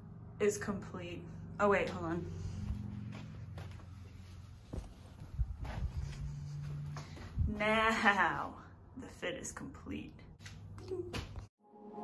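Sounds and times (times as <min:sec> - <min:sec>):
footsteps: 0:01.8 - 0:08.2.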